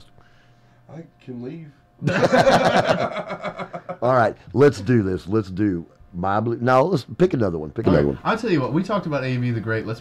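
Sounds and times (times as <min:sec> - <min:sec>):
people laughing loudly: 0:02.0 - 0:04.0.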